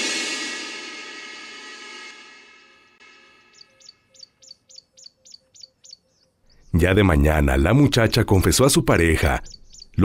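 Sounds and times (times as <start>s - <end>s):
small bird chirping: 3.5s - 7.2s, 8.0s - 10.0s.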